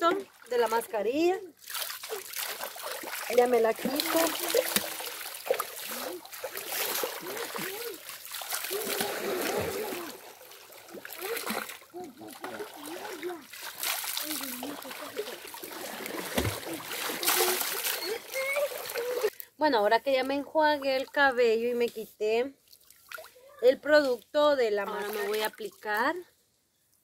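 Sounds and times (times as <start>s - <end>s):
water poured and splashing: 1.6s - 19.4s.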